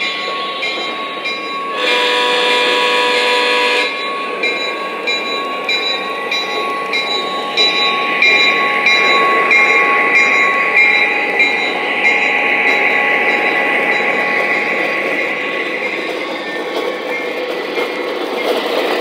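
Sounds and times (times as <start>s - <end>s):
model train diesel engine drone: 0.0s - 19.0s
train horn blast: 1.7s - 4.0s.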